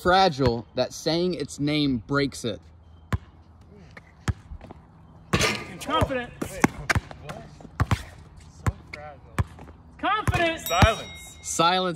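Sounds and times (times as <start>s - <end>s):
basketball bouncing on hard court: 3.1s - 3.3s, 7.8s - 11.0s.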